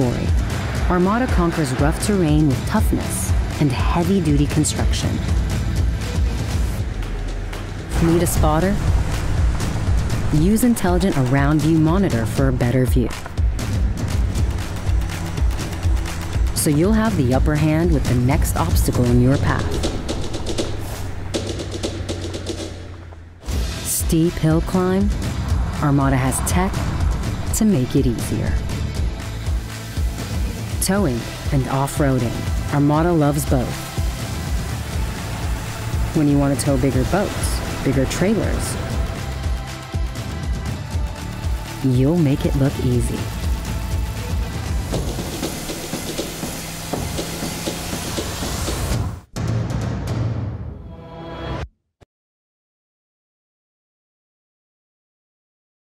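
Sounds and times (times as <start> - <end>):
road and tyre noise: 0.0 - 4.6, 5.3 - 30.8, 33.5 - 40.5, 43.2 - 49.3
low sustained bass: 0.0 - 19.6, 23.5 - 45.0
rapid ticking percussion: 0.0 - 23.2, 24.4 - 49.3
electronic soundtrack music: 0.0 - 51.6
faint whoosh: 24.8 - 29.4.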